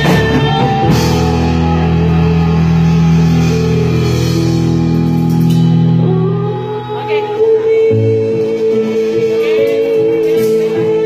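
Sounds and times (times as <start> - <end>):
drum kit: 0.0 - 11.0
electric guitar chord: 0.0 - 11.0.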